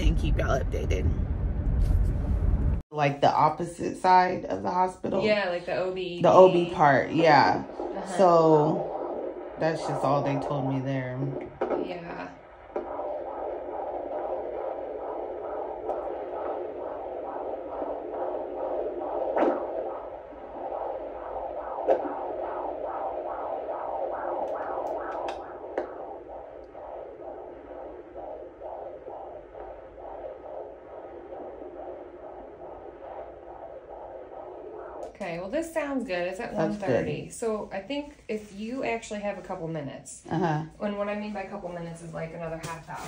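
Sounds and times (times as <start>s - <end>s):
fetal heartbeat whooshing pulse: 0.0s - 43.0s.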